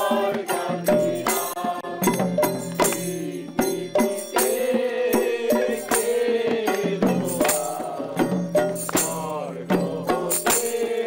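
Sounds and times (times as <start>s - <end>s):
barrel drum: 0.0s - 11.0s
men singing a chant together: 0.0s - 11.0s
small hand cymbals: 0.0s - 11.0s
hand claps: 1.2s - 3.3s, 8.7s - 9.3s.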